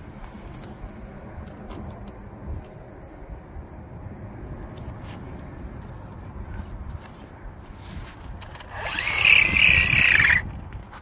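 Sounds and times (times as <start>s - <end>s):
electric motor whine: 8.4s - 10.4s.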